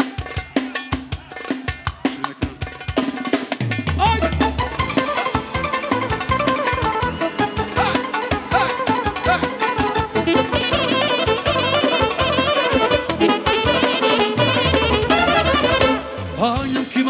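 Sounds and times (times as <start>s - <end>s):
drum kit beat: 0.0s - 17.0s
live dance band playing: 0.0s - 17.0s
bass: 3.6s - 17.0s
gliding melody line: 4.2s - 16.5s.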